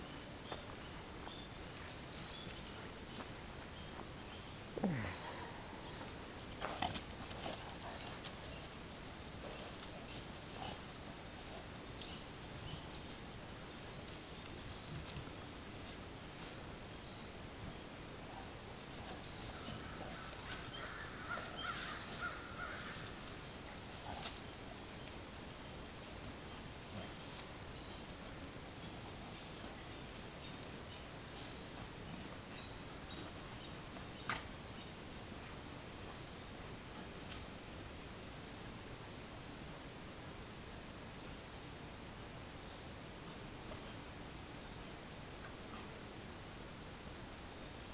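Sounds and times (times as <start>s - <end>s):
insects chorus: 0.0s - 47.9s.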